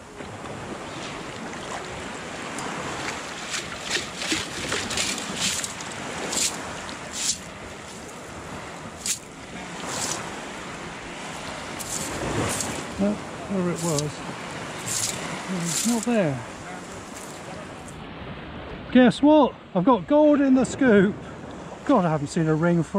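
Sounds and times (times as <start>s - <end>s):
watery wash: 0.0s - 22.9s
splashes and shingle rattles: 1.7s - 8.2s, 11.7s - 13.0s, 13.8s - 16.3s.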